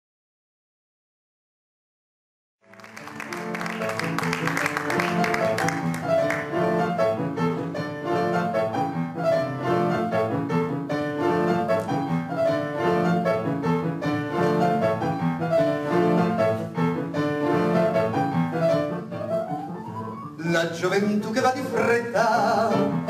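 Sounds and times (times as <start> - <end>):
solo piano playing: 2.6 - 23.0.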